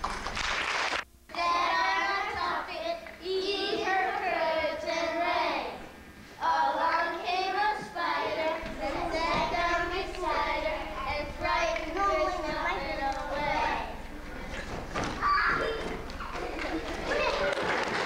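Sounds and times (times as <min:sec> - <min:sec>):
young children singing: 0:01.3 - 0:18.0.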